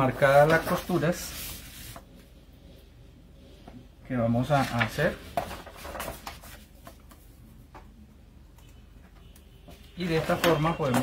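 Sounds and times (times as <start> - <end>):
stiff paper rustling: 4.5 - 7.0.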